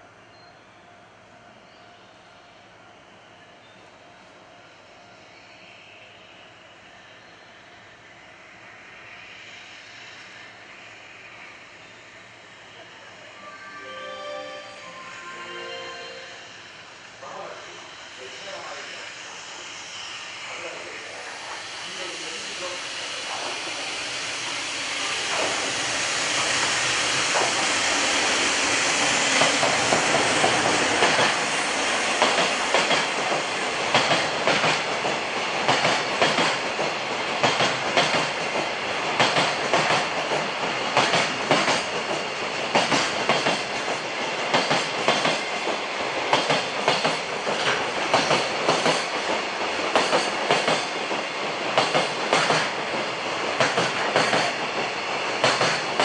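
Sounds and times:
train rolling rumble: 16.7s - 56.0s.

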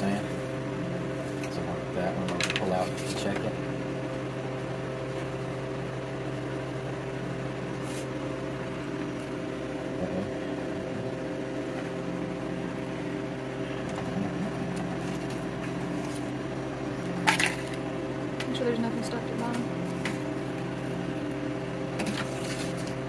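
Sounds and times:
electrical appliance hum: 0.0s - 23.0s.

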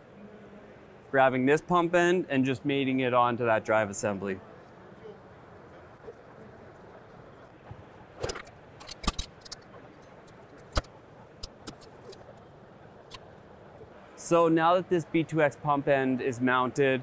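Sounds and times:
low background hum: 0.0s - 17.0s
metal clinks and knocks: 8.2s - 12.2s.

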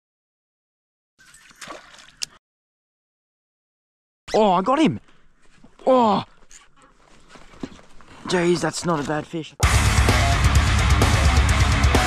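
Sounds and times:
lure splashing into water: 1.2s - 2.4s.

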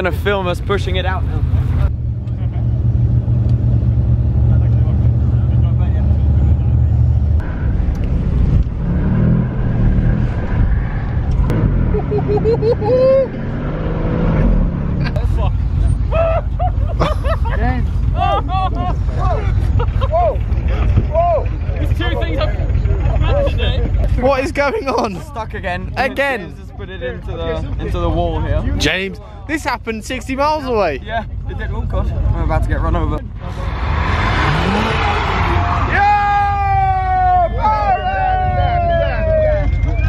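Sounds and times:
car engine running: 0.0s - 13.3s, 14.1s - 40.0s
low vehicle rumble: 0.0s - 40.0s
people calling out: 34.7s - 40.0s.

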